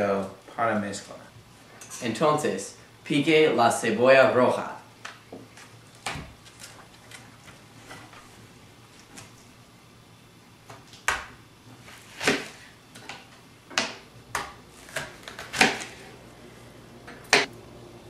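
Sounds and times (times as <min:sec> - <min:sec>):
knife chopping onion on board: 0:12.1 - 0:12.6, 0:13.7 - 0:16.0.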